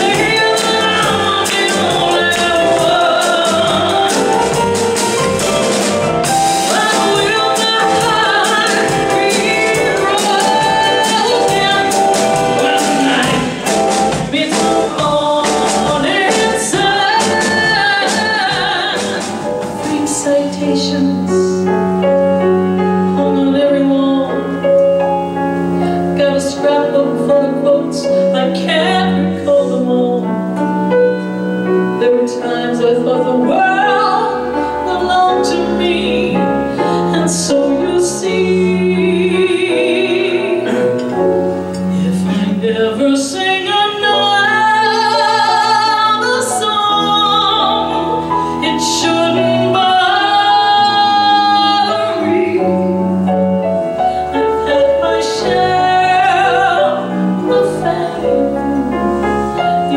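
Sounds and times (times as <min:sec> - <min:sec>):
woman singing with vibrato: 0:00.0 - 0:22.2, 0:22.8 - 0:59.9
drums: 0:00.0 - 0:59.9
piano chords: 0:00.0 - 0:59.9
person singing: 0:06.6 - 0:21.6.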